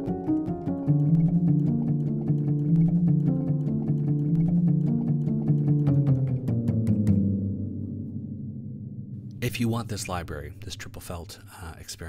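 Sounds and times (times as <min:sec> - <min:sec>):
felt piano melody: 0:00.0 - 0:12.0.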